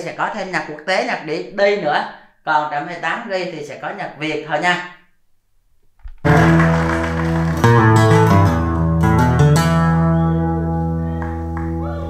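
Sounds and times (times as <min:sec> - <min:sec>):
music through loudspeakers: 0:06.3 - 0:12.0.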